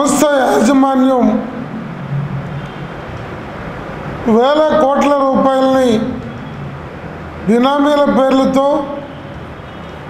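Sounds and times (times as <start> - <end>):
faint low hum: 0.4 - 7.0.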